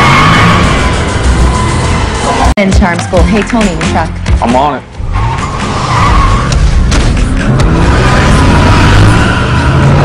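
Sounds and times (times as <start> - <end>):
car tyres squealing: 0.0 - 2.5, 5.0 - 10.0
loud engine rumble: 5.0 - 10.0.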